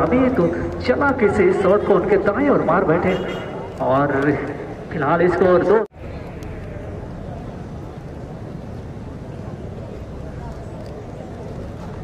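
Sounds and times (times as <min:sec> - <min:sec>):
crowd murmur: 0:05.9 - 0:12.0.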